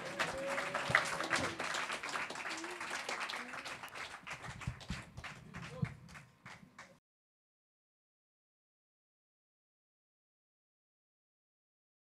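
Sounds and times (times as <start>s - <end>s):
faint voices: 0.0s - 4.0s
audience applauding: 0.0s - 6.9s.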